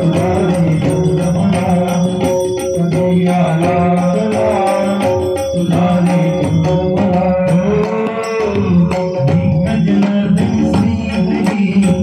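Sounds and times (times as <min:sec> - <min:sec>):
men singing into microphones: 0:00.0 - 0:12.0.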